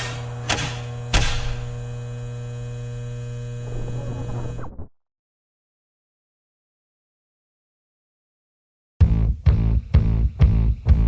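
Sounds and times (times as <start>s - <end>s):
sharp knocks: 0.0s - 1.7s
electrical hum: 0.0s - 4.9s.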